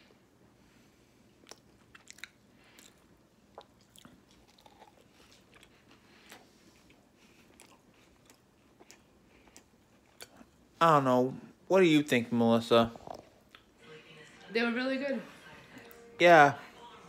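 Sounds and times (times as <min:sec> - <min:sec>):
chewing biscuit: 0:01.4 - 0:10.7.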